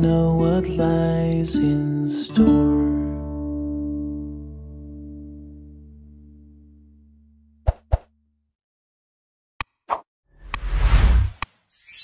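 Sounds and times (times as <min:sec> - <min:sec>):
guitar chord: 0:00.0 - 0:07.5
pop sound effects: 0:07.6 - 0:08.1.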